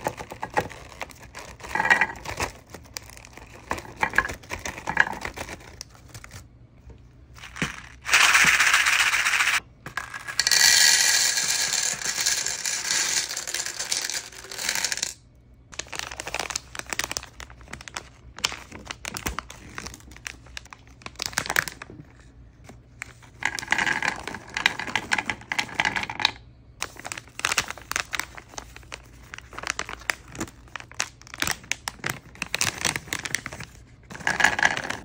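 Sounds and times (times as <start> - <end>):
candies rattling onto a platter: 7.4 - 15.2, 23.4 - 35.0.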